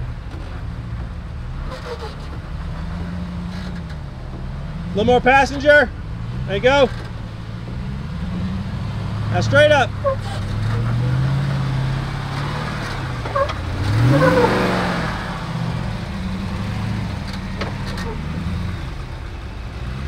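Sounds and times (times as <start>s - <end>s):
truck engine revving: 0.0s - 20.0s.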